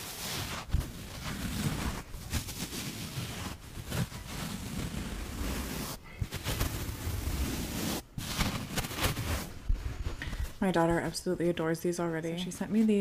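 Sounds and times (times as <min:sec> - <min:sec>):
sponges rustling: 0:00.0 - 0:11.2.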